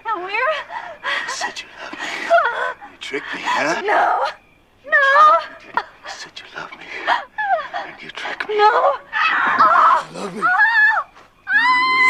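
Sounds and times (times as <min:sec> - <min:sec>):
breathy struggle sounds: 0:09.9 - 0:10.6.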